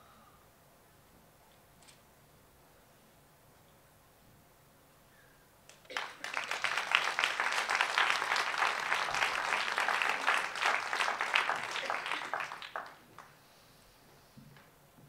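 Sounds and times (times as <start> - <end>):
audience applauding: 5.7 - 13.4.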